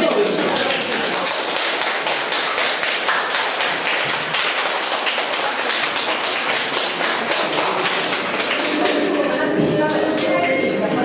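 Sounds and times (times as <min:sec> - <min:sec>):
audience applauding: 0:00.0 - 0:10.2.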